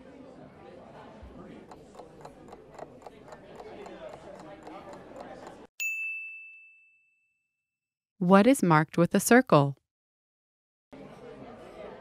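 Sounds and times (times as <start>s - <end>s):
faint background murmur: 0.0s - 5.7s, 11.0s - 12.0s
clock ticking: 1.6s - 5.7s
bright bell ding: 5.8s - 7.5s.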